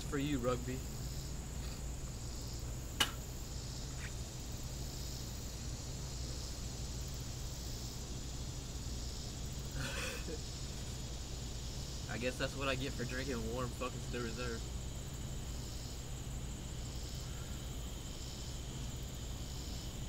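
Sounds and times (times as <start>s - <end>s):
insects chirring: 0.0s - 20.0s
low background hum: 0.0s - 20.0s
sharp click: 3.0s - 3.2s.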